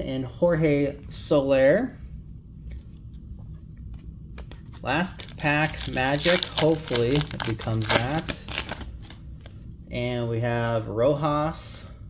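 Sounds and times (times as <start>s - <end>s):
low room hum: 0.0s - 12.0s
foil card pack handled: 4.4s - 9.2s.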